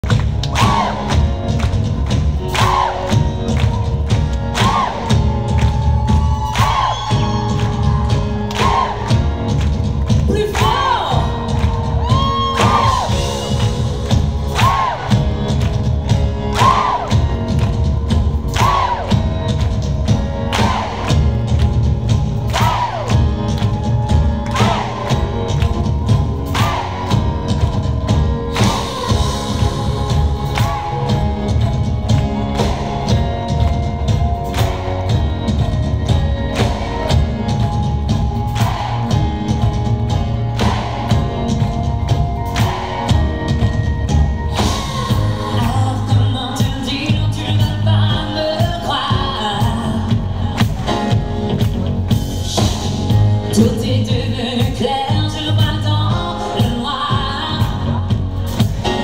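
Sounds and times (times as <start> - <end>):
crowd cheering: 0.0 - 15.8, 16.4 - 19.6, 20.4 - 21.6, 22.3 - 46.0
live concert music with heavy bass: 0.0 - 59.0.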